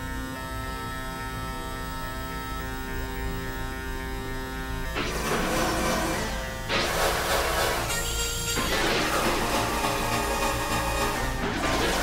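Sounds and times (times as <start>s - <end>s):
electronic drone music: 0.0s - 12.0s.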